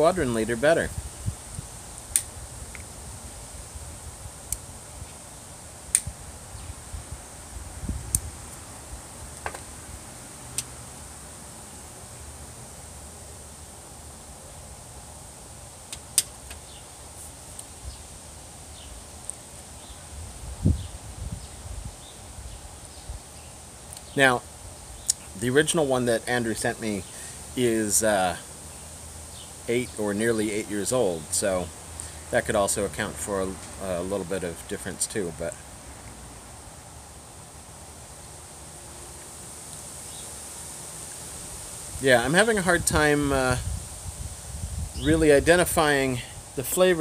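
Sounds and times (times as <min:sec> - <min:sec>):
faint high whine: 0:00.0 - 0:47.0.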